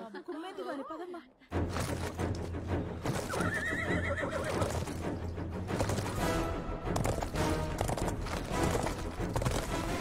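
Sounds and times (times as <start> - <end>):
film score music: 1.0 - 10.0
horses galloping: 3.0 - 10.0
horse whinnying: 3.1 - 5.0.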